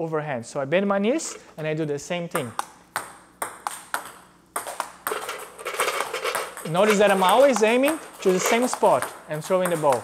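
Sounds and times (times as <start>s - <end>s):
table tennis ball clicks: 2.3s - 10.0s.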